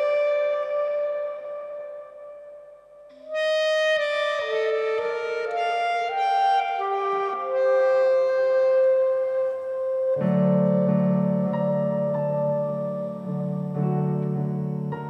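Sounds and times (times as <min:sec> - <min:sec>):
low keyboard chord: 0:00.0 - 0:15.0
solo clarinet melody: 0:00.0 - 0:15.0.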